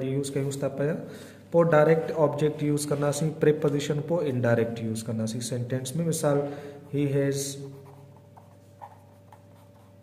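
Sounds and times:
pen scratching on paper: 0:07.7 - 0:10.0.

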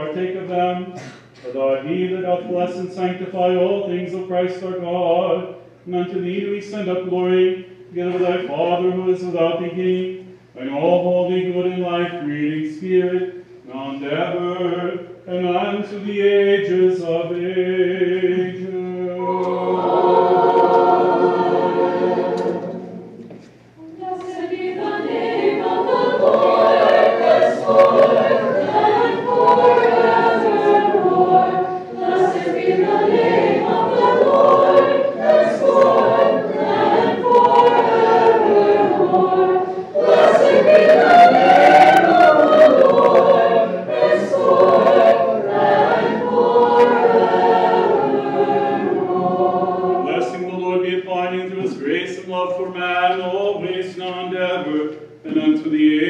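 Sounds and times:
choir singing chant a cappella: 0:00.0 - 0:56.0.

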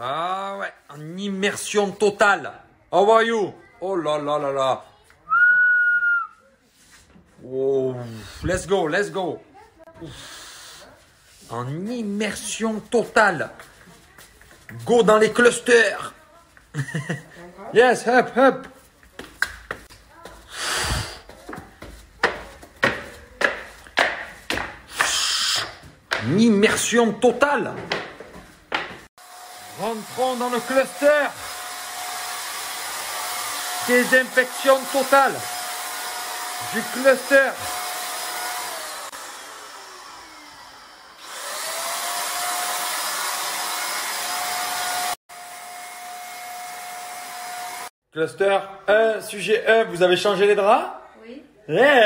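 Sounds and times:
footsteps on wooden stairs: 0:18.6 - 0:26.4, 0:27.7 - 0:29.1
spray hissing: 0:24.9 - 0:25.8
electric sprayer motor whining: 0:29.2 - 0:47.9.

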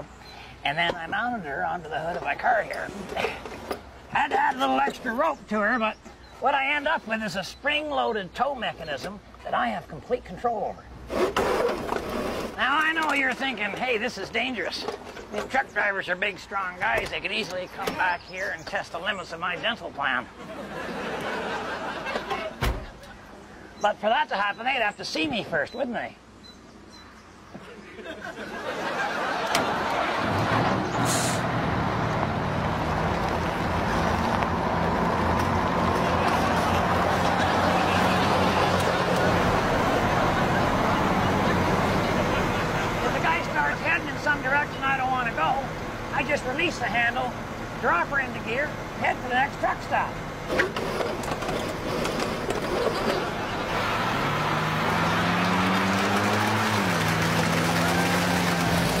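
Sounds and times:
road noise: 0:00.0 - 0:59.0
truck diesel engine running: 0:29.6 - 0:59.0
air brakes hissing: 0:31.0 - 0:31.5.

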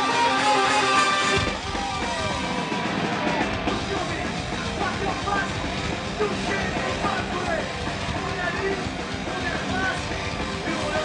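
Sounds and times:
electric guitar sliding notes: 0:00.0 - 0:03.7
live metal band playing: 0:00.0 - 0:11.0.

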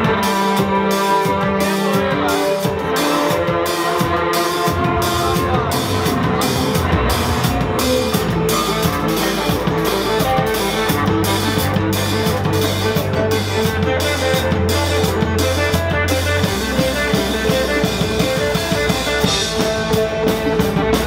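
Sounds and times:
bass guitar: 0:00.0 - 0:21.0
drum kit: 0:00.0 - 0:21.0
electric guitar: 0:00.0 - 0:21.0
strummed mandolin: 0:00.0 - 0:21.0.

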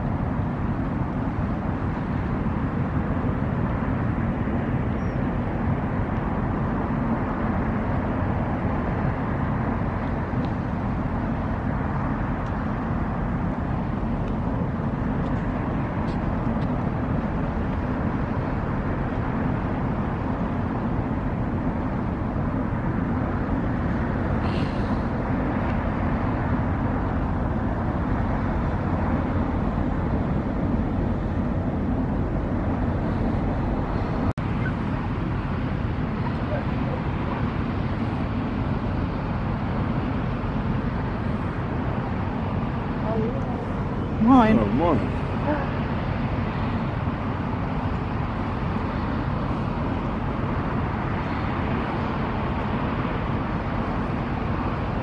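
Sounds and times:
boat diesel engine droning: 0:00.0 - 0:55.0.

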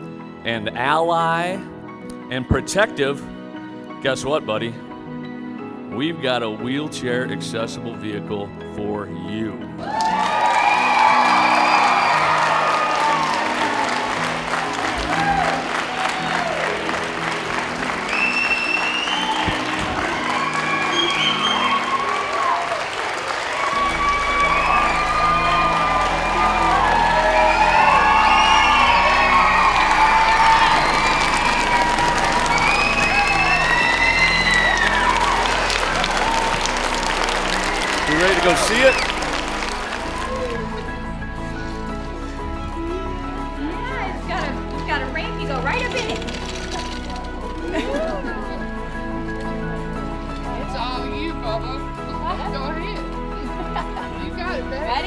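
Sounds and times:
background music: 0:00.0 - 0:55.0
crowd cheering and screaming: 0:09.8 - 0:41.2, 0:45.7 - 0:48.6
crowd applauding: 0:09.8 - 0:51.4.

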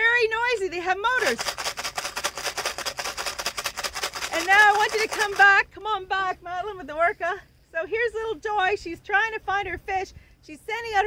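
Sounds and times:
rapid pulsing buzz: 0:00.8 - 0:05.8.

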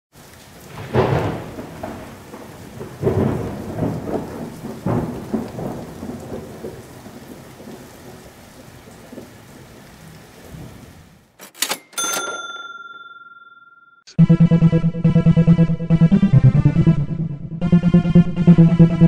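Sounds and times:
rain hissing: 0:00.1 - 0:11.4
thunder rumbling: 0:00.2 - 0:11.3.

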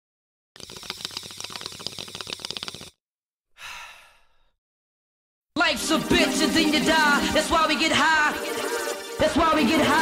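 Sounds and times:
water pipe bubbling: 0:00.6 - 0:03.0
breathy exhale: 0:03.5 - 0:04.6.

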